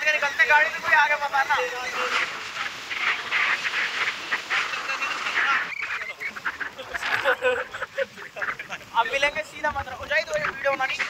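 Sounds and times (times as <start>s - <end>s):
men laughing and whooping: 4.4s - 9.0s.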